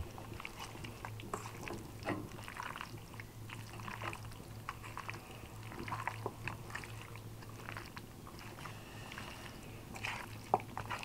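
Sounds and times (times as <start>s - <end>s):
hand squelching chicken in marinade: 0.0s - 11.0s
steady low hum: 0.0s - 11.0s.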